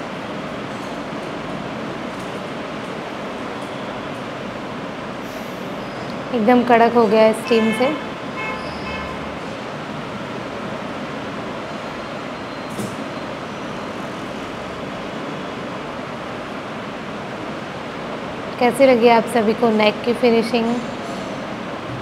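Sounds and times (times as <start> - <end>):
steady rushing noise: 21.7 - 22.0.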